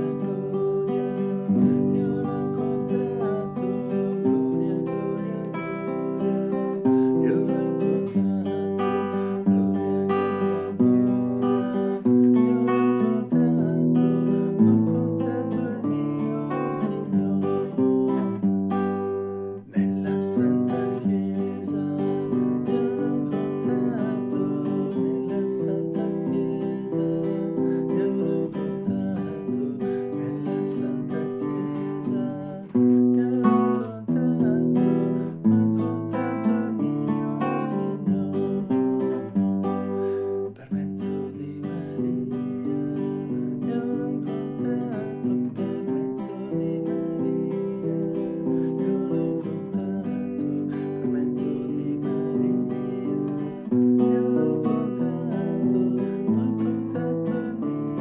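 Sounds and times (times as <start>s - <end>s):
classical guitar strumming chords: 0.0s - 58.0s
man singing: 0.0s - 58.0s.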